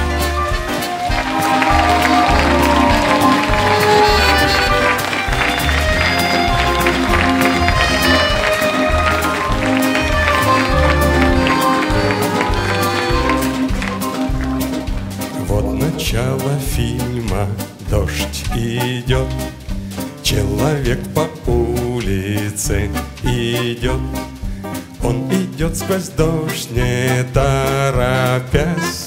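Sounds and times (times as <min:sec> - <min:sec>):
live ensemble playing: 0:00.0 - 0:29.0.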